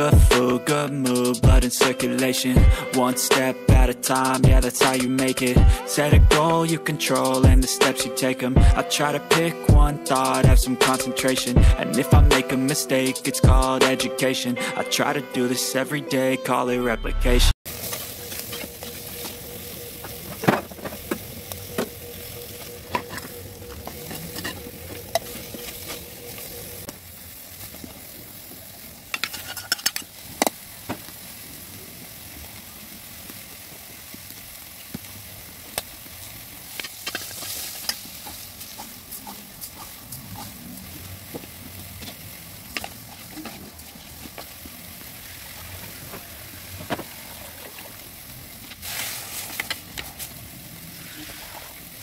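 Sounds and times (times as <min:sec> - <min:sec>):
meat sizzling in a pot: 0:17.7 - 0:52.0.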